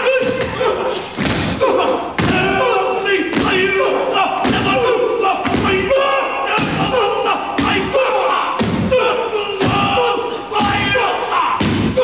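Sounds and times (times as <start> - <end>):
men chanting in unison: 0.0 - 12.0
stamping and slapping thuds: 0.2 - 1.6, 2.2 - 2.7, 3.3 - 12.0.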